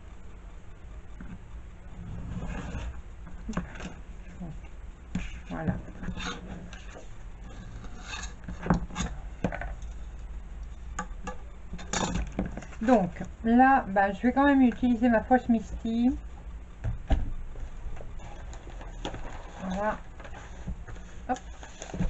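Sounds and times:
craft knife scraping along ruler: 6.0s - 9.2s.

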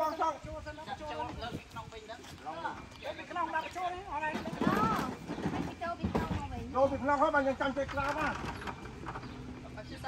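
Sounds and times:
people talking: 0.0s - 8.4s.

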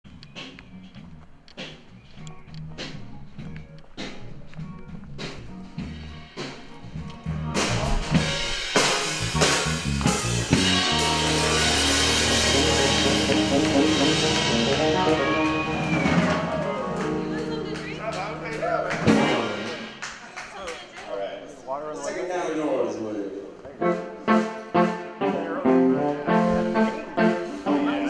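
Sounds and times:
drum hits: 5.3s - 18.0s, 18.8s - 20.0s.

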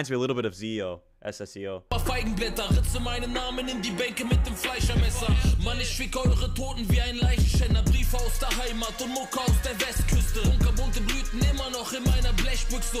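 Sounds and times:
deep bass hits: 1.9s - 3.6s, 4.8s - 8.6s, 10.0s - 12.7s
fast hi-hats: 1.9s - 13.0s
man rapping over a beat: 1.9s - 13.0s.

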